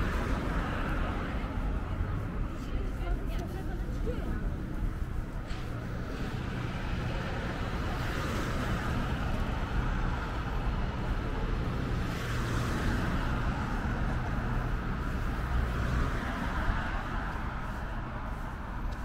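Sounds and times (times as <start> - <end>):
road traffic noise: 0.0 - 19.0.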